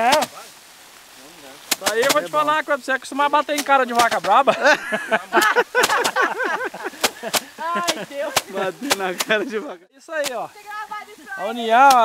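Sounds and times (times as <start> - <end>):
rice stalks knocked on wooden bench: 0.0 - 0.4, 3.6 - 4.4, 5.4 - 6.3, 7.0 - 9.4
people laughing: 4.3 - 9.8.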